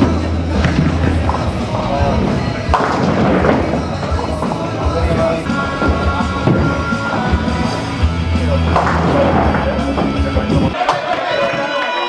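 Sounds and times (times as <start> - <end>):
bowling pins knocking: 0.0 - 11.2
bowling balls rolling: 0.0 - 11.8
background music: 0.0 - 12.0.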